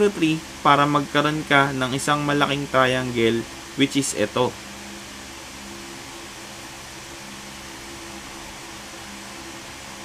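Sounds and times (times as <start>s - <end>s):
faint low hum: 0.0s - 10.0s
room tone hiss: 0.0s - 10.0s.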